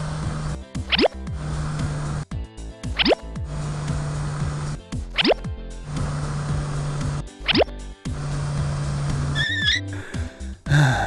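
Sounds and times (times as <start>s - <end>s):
motor-like hum: 0.0s - 10.5s
cartoon background music: 0.1s - 11.0s.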